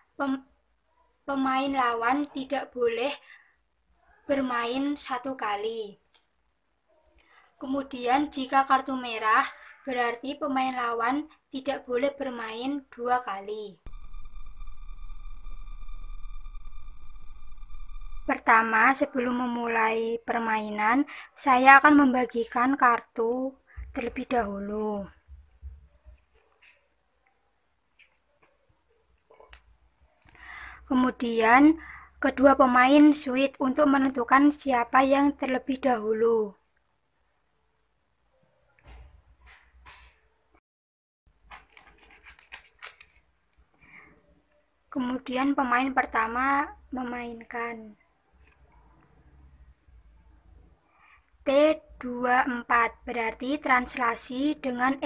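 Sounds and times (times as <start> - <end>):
low electronic hum: 13.9 - 18.5
steady high electronic tones: 13.9 - 18.5
paper cutouts rustling and tapping: 41.4 - 43.7.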